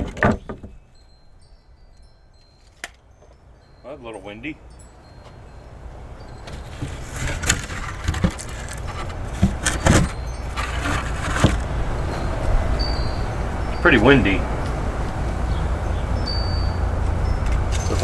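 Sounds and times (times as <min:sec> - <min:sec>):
wind gusting on microphone: 0:03.4 - 0:18.0.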